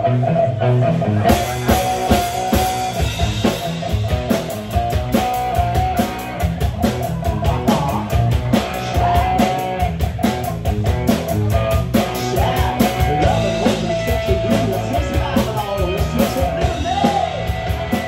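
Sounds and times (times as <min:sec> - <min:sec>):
electric guitars: 0:00.0 - 0:18.0
drum kit beat: 0:01.2 - 0:18.0.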